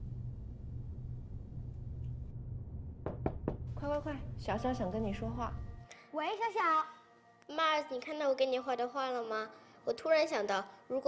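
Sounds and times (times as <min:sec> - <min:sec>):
knocks on wooden door: 0:03.0 - 0:03.9.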